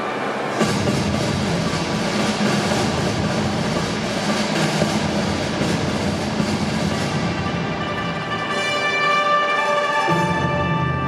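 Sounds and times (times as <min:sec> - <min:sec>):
orchestral music: 0:00.5 - 0:11.0.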